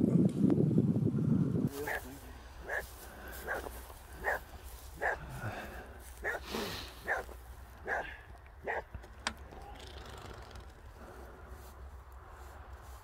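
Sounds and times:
dog barking: 1.8 - 5.3, 6.2 - 8.9.

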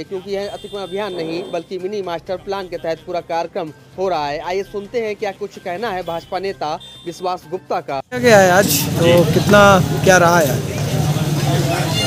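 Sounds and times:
outdoor street noise: 0.0 - 12.0
man speaking close to microphone: 5.5 - 10.6.

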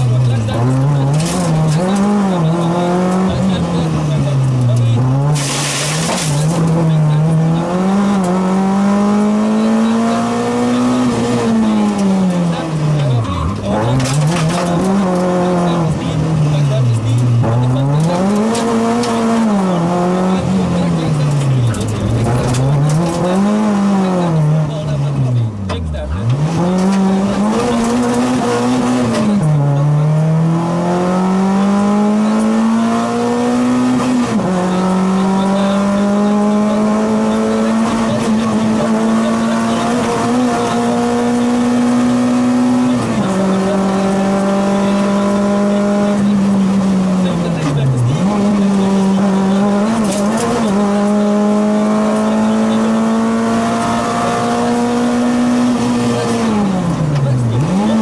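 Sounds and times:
car engine at full throttle: 0.0 - 58.0.

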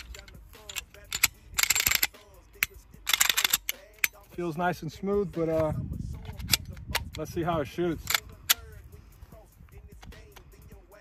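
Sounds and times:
metallic rasp of pistol slide: 0.0 - 4.2, 5.4 - 7.3, 8.0 - 8.8.

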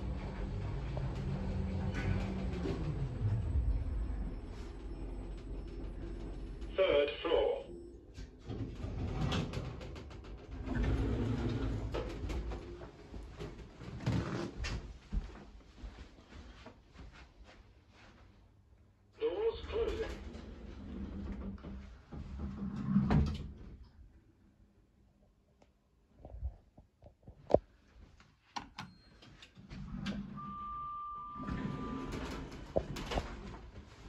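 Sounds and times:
lift doors sliding: 0.0 - 7.5, 8.1 - 14.5, 19.6 - 23.7, 29.6 - 34.0.

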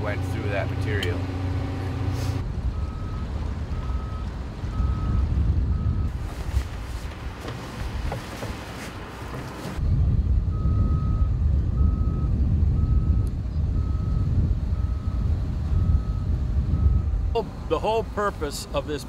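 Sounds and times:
diesel engine rumble: 0.0 - 19.0
wind-like noise: 2.4 - 17.7
backup alarm beeping: 2.7 - 6.2.

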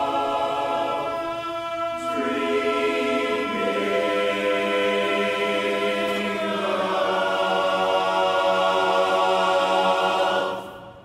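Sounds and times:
men's chorus singing a cappella: 0.0 - 11.0.

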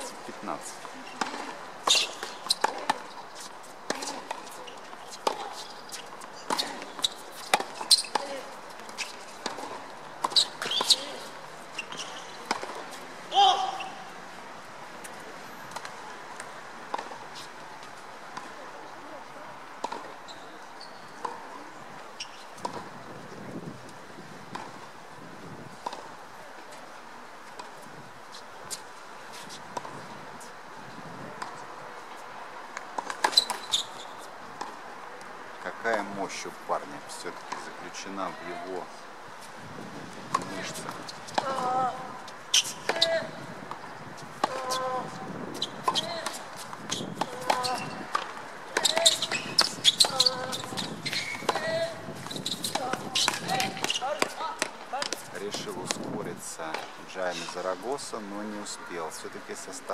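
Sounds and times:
rackets hitting tennis ball: 0.8 - 14.0, 40.3 - 56.1
person shouting: 13.3 - 14.0
ball bouncing on hard court: 44.4 - 56.0.

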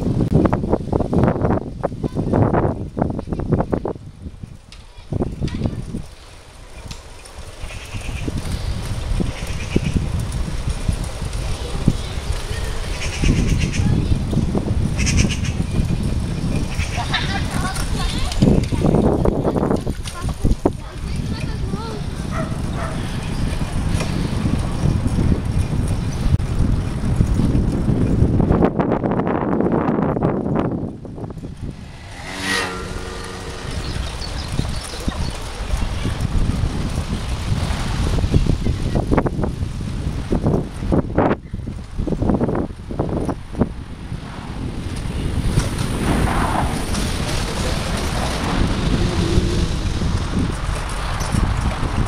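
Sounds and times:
tyre and road rumble: 0.0 - 52.0
wind noise on microphone: 0.0 - 52.0.

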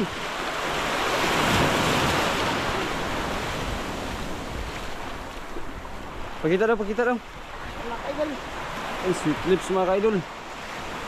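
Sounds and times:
surf washing up sand: 0.0 - 11.0.

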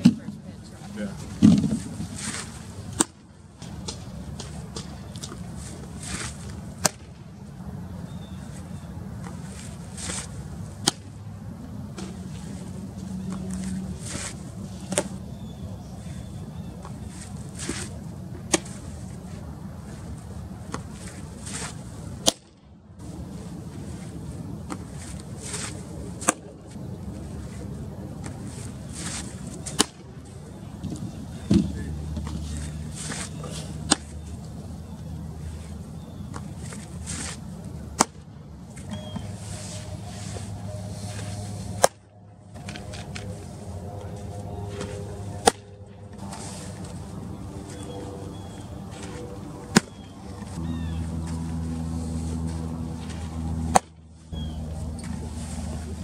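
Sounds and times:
softball hitting leather mitt: 29.6 - 30.0, 37.9 - 38.2, 41.8 - 42.0, 45.4 - 45.7, 49.7 - 50.0, 53.7 - 54.0.

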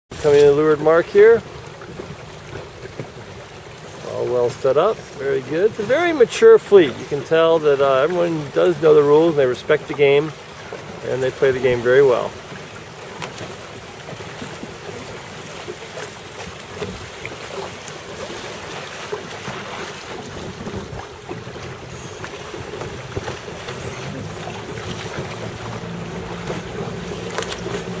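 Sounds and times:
water noise: 0.1 - 28.0
wind: 0.1 - 28.0
wind buffeting microphone: 19.3 - 28.0.

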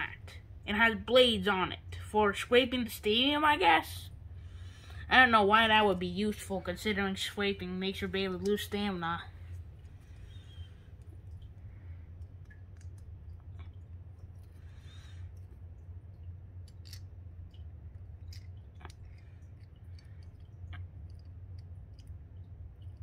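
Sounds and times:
steady low hum: 0.0 - 23.0
light clicks of small parts: 12.2 - 14.6, 15.2 - 23.0.

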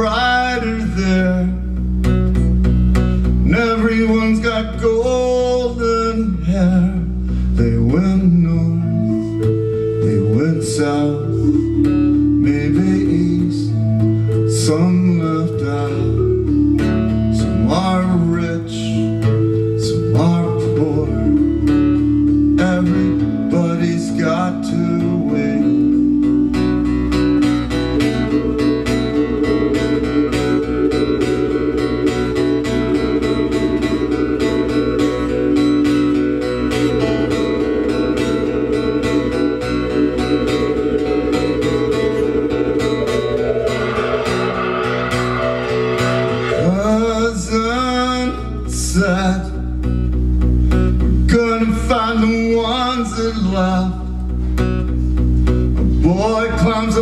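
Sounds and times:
acoustic guitar strumming: 0.0 - 57.0
sustained keyboard chords: 0.0 - 57.0.

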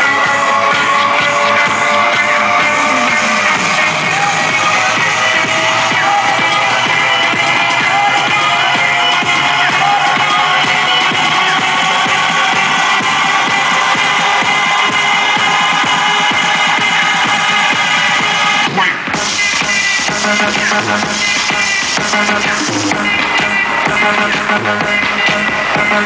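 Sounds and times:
loud electronic dance music: 0.0 - 26.0.

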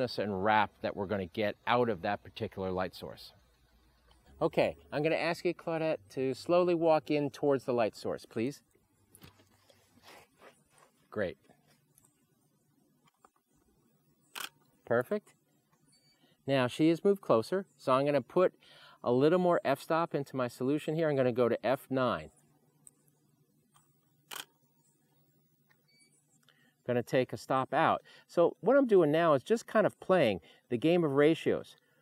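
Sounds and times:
camera shutter click: 14.3 - 14.6, 24.3 - 24.5.

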